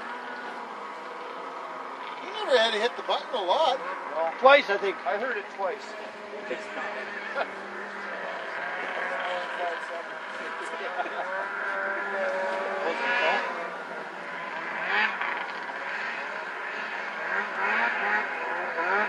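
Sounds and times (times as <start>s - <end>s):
distant snowmobile engines revving: 0.0s - 19.0s.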